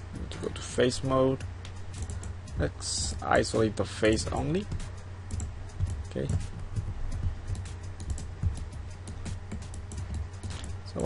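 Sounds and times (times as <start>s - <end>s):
low electrical hum: 0.0s - 11.0s
keyboard and mouse clicking: 5.3s - 6.4s, 7.5s - 10.8s.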